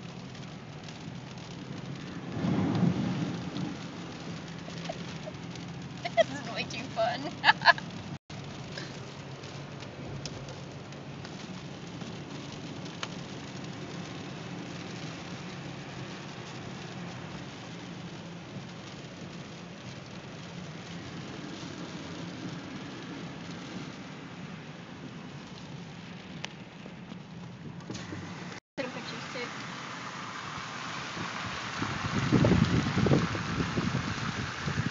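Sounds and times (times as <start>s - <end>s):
car engine and road hum: 0.0s - 34.9s
rain on car: 0.0s - 34.9s
tyres on wet road: 0.0s - 34.9s.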